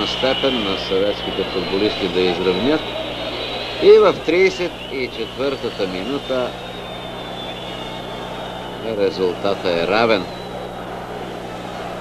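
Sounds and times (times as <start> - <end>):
faint high-pitched whine: 0.0 - 12.0
low hum: 0.0 - 12.0.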